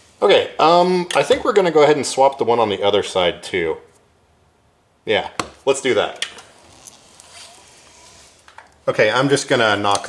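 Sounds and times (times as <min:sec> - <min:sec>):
man speaking: 0:00.2 - 0:03.9, 0:05.0 - 0:06.3, 0:08.8 - 0:10.0.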